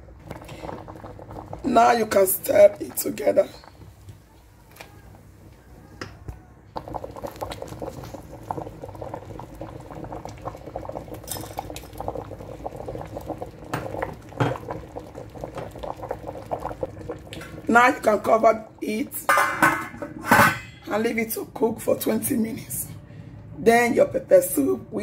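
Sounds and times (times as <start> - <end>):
soup bubbling in a pot: 0.0 - 5.5, 6.7 - 20.3.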